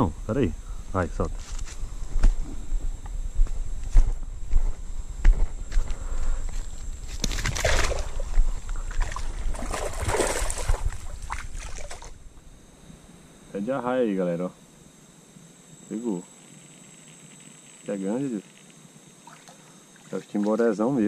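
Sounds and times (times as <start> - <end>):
water splashing and sloshing: 7.1 - 12.2, 19.2 - 20.6.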